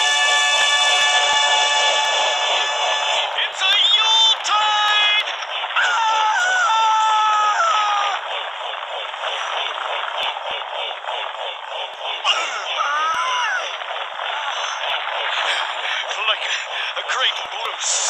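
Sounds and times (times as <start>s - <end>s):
crowd yelling: 0.0s - 18.0s
long held cry: 5.8s - 8.3s.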